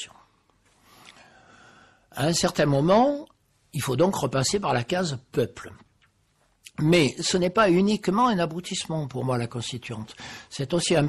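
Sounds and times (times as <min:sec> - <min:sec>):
man breathing in through mouth: 0:00.8 - 0:02.1.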